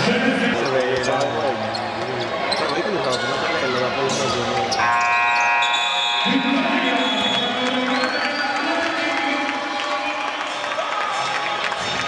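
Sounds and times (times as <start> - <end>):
crowd noise: 0.0 - 12.0
arena buzzer steady tone: 4.8 - 7.3.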